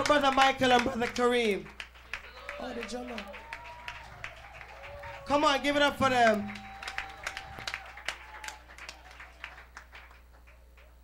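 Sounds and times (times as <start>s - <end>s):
congregation applauding: 0.0s - 11.0s.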